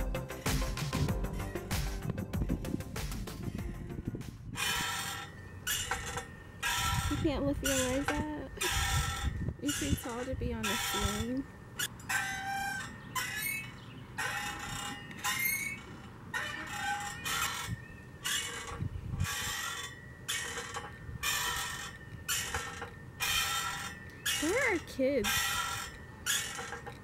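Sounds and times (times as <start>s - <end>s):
rhythmic metallic squeaking: 0.0s - 27.0s.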